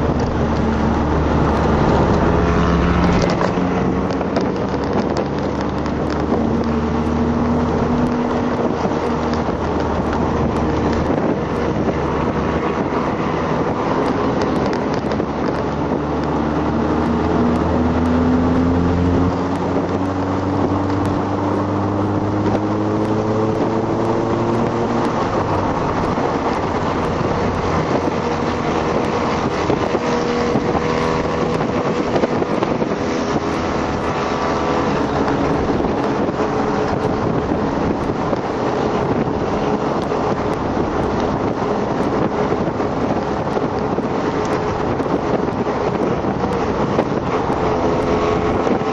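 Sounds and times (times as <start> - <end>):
car engine revving: 0.0 - 48.9
road and wind noise: 0.0 - 48.9.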